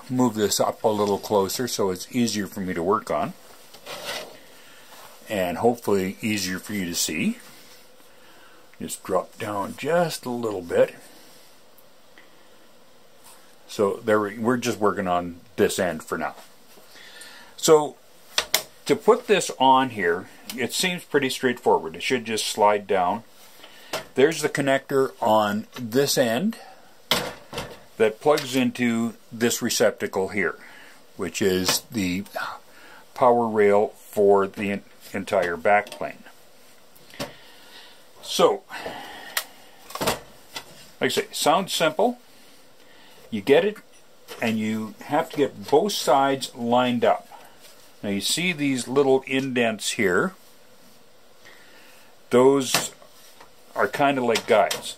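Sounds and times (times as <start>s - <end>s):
faint room tone hiss: 0.0s - 54.9s.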